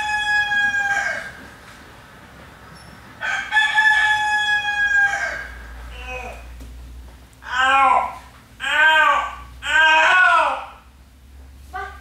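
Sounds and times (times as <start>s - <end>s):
rooster crowing: 0.0s - 1.5s, 3.2s - 5.7s.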